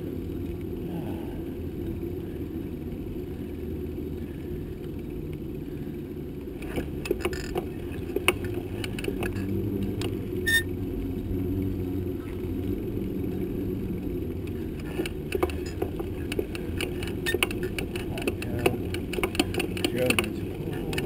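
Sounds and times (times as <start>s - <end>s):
bicycle tyres rumbling on asphalt: 0.0s - 21.0s
bike clicks and rattles: 4.3s - 11.3s, 12.2s - 21.0s
high squeak: 10.4s - 10.7s.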